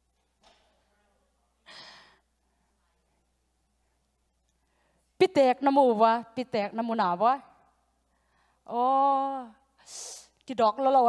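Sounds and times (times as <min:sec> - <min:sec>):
breath into microphone: 0:04.6 - 0:05.2, 0:08.0 - 0:08.6.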